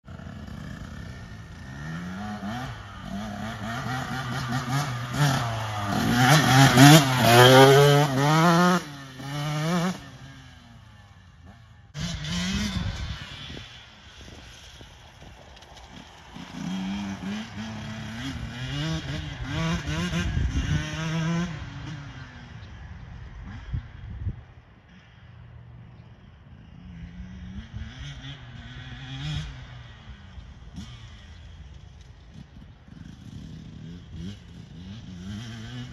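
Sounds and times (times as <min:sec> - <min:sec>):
dirt bike engine revving: 0:00.1 - 0:14.8, 0:15.8 - 0:22.4, 0:26.9 - 0:35.9.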